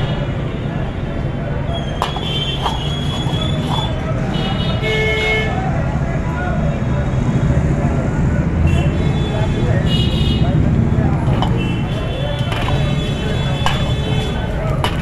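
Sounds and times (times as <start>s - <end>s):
low rumble of traffic: 0.0s - 15.0s
vehicle horns tooting: 1.7s - 5.6s, 8.6s - 10.6s, 11.4s - 15.0s.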